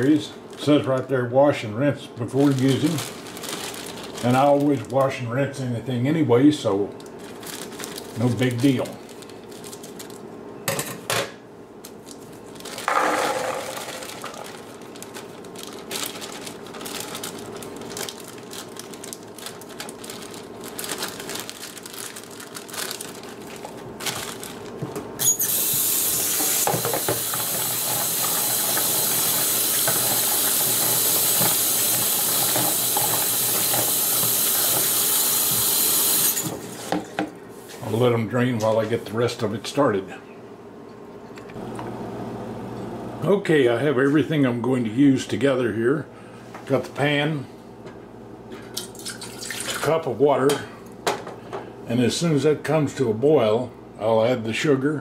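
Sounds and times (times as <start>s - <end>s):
plastic bag crinkling: 2.2s - 5.3s, 6.8s - 10.3s, 11.9s - 25.3s
berries pouring into plastic colander: 2.3s - 5.2s, 12.6s - 24.7s, 26.1s - 36.2s
kitchen tap running: 12.9s - 14.7s, 25.2s - 36.6s, 48.8s - 49.9s.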